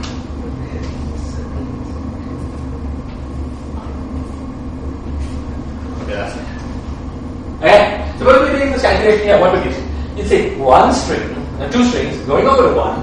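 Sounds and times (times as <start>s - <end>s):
low room hum: 0.0s - 13.0s
faint murmur of voice: 0.3s - 4.6s.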